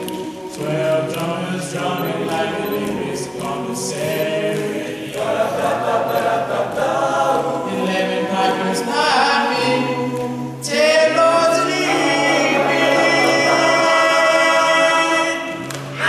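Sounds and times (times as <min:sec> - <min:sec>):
male voices singing in harmony: 0:00.0 - 0:16.0.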